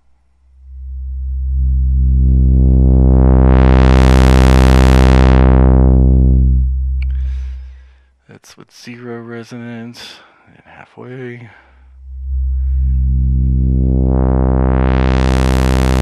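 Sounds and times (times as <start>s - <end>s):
filtered sawtooth synth drone: 0.5s - 8.0s, 11.8s - 16.0s.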